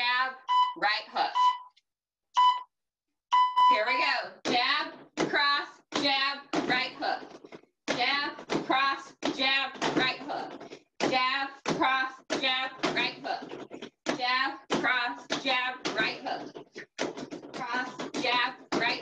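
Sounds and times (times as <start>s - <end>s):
electronic beep: 0.4s - 1.8s, 2.4s - 2.7s, 3.3s - 3.9s
person talking: 3.7s - 16.5s, 17.5s - 19.0s.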